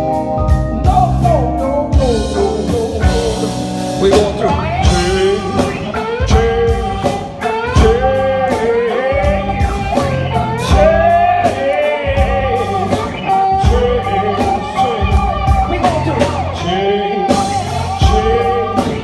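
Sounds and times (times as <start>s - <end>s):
electric guitar: 0.0s - 19.0s
person singing: 0.0s - 19.0s
steady drum beat: 0.0s - 19.0s.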